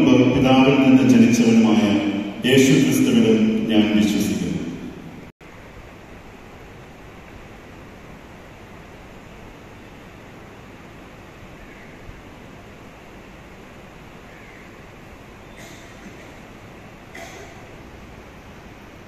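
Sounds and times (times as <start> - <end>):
room noise hiss: 0.0 - 19.0.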